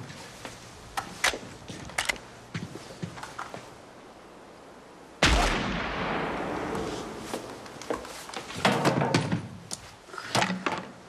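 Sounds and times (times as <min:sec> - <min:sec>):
rifle shot with echo: 0:05.2 - 0:07.6.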